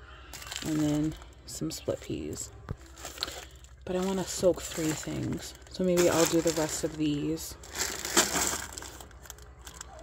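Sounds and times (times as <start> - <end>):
plastic bags of beans crinkling: 0.3 - 10.0.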